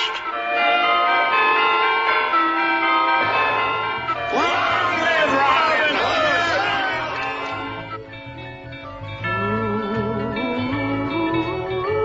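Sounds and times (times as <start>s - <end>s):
church bells pealing: 0.0s - 12.0s.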